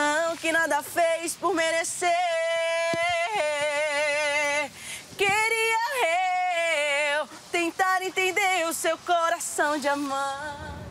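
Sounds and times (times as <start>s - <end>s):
woman singing unaccompanied: 0.0s - 10.9s.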